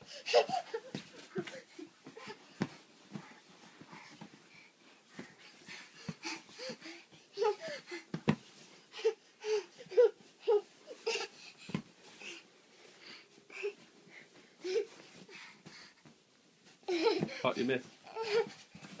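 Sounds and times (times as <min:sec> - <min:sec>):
toddler giggling: 0:00.1 - 0:02.3, 0:16.8 - 0:18.5.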